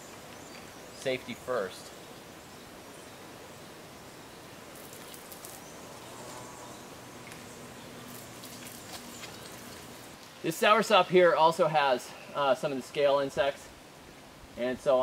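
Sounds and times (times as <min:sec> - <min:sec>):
outdoor background hiss: 0:00.0 - 0:15.0.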